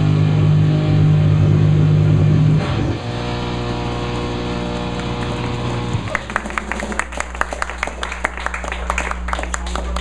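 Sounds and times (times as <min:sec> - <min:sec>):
distorted heavy rock band: 0:00.0 - 0:06.9
amplifier hum and drone: 0:00.0 - 0:10.0.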